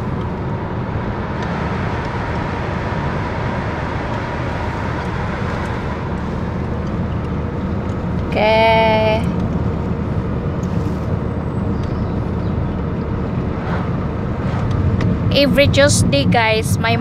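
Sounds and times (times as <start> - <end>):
car cabin road and engine noise: 0.0 - 17.0.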